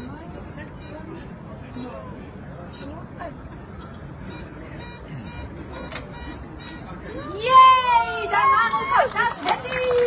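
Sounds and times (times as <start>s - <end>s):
faint distant voices: 0.0s - 10.0s
low background noise: 0.0s - 10.0s.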